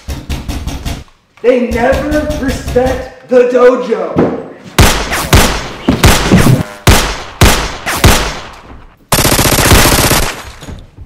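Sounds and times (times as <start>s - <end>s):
automatic gunfire burst: 9.1s - 10.6s.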